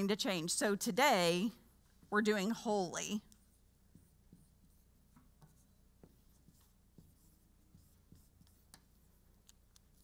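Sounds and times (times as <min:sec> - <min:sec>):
marker squeaking on whiteboard: 0:03.3 - 0:10.0.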